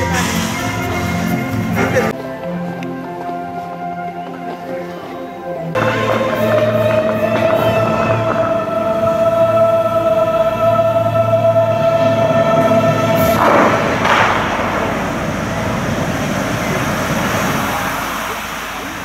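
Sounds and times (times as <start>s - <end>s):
show music sustained chord: 0.0s - 18.6s
water jets rushing: 5.8s - 19.0s.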